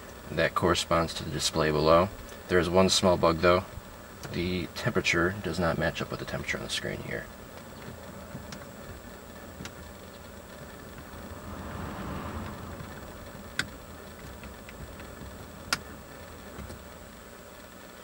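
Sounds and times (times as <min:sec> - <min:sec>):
car engine idling: 0:00.0 - 0:18.0
climate fan running: 0:00.0 - 0:18.0.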